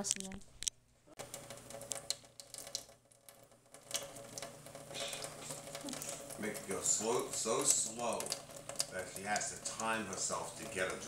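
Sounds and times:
water dripping into steel sink: 0:01.2 - 0:11.0.

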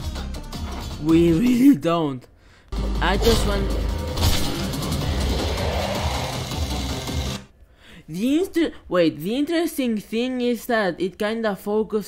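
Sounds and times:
cartoon soundtrack music: 0:02.7 - 0:07.5.

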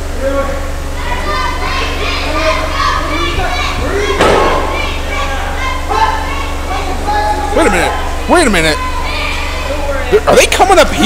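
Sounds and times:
crowd shouting and calling out: 0:00.0 - 0:11.0
steady low hum: 0:00.0 - 0:11.0
thud: 0:04.2 - 0:04.8.

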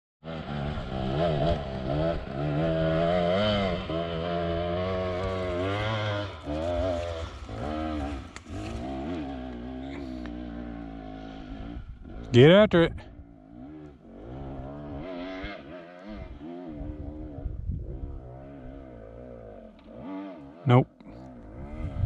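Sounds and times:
dirt bike engine revving: 0:00.2 - 0:22.0.

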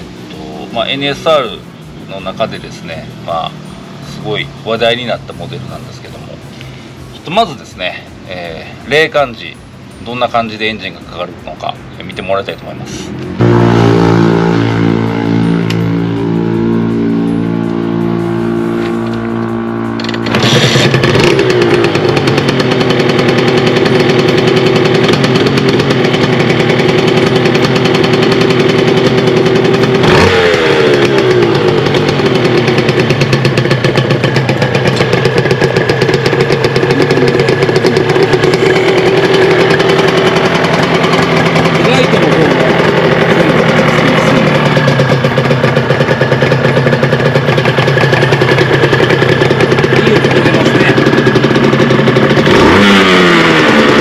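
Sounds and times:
two-stroke motorcycle engine: 0:00.0 - 0:54.0
throttle blip: 0:13.4 - 0:18.0.

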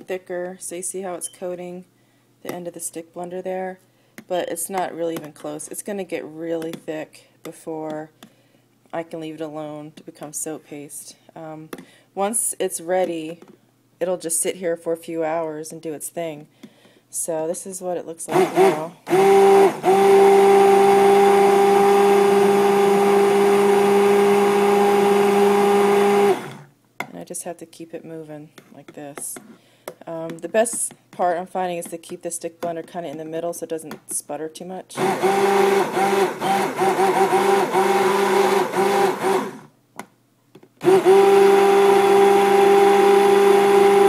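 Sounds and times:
stick blender running: 0:18.3 - 0:26.7, 0:35.0 - 0:39.7, 0:40.8 - 0:44.0.

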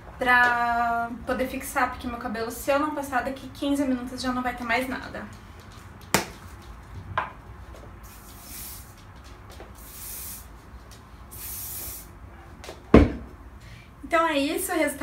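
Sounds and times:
aerosol can spraying: 0:08.0 - 0:09.0, 0:09.8 - 0:10.5, 0:11.3 - 0:12.1
loud thump: 0:12.9 - 0:13.3.

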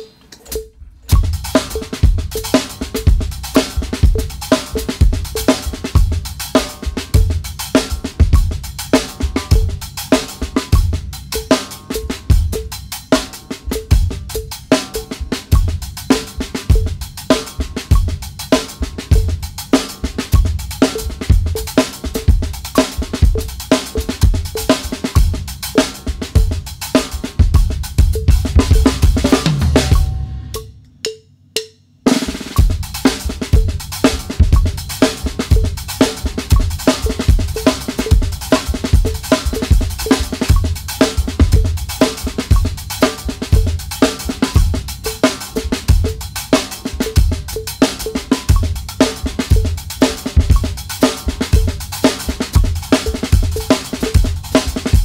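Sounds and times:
snare drum: 0:01.1 - 0:30.7, 0:32.1 - 0:55.0
bass drum kicks: 0:27.5 - 0:30.6
hi-hat: 0:32.3 - 0:55.0.

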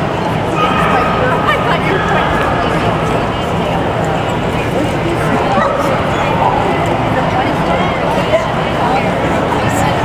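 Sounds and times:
chatter of people: 0:00.0 - 0:10.0.

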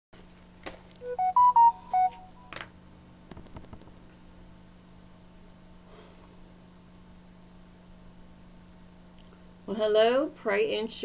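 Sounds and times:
electronic beeping chime: 0:01.0 - 0:02.5.

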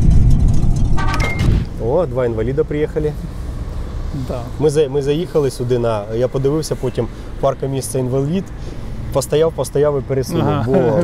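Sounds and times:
deep rumble: 0:00.0 - 0:04.7
bright ringing tone: 0:00.8 - 0:01.7.

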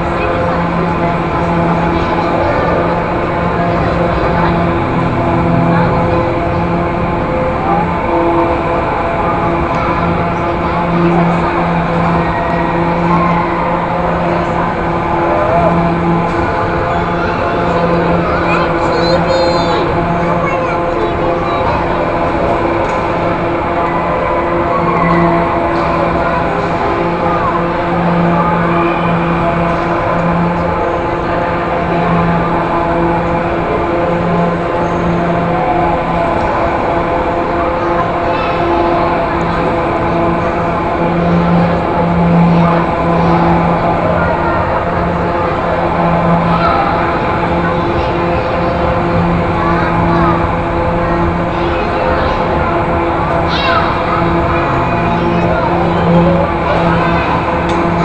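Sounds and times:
carousel hum: 0:00.0 - 0:58.0
loud rushing noise: 0:00.0 - 0:58.0
low held tone: 0:00.0 - 0:58.0.

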